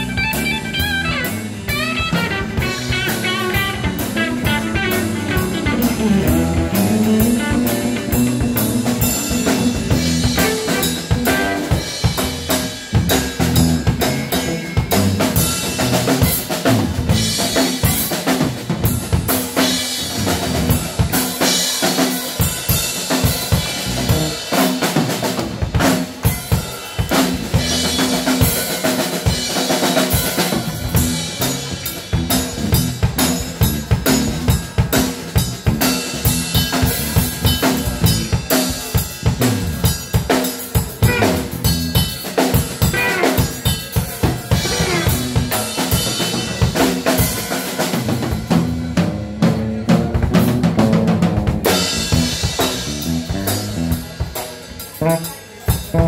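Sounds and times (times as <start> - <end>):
electric bass guitar: 0.0 - 21.7, 23.2 - 26.1, 27.0 - 40.2, 40.8 - 56.0
drum kit played with sticks: 0.0 - 56.0.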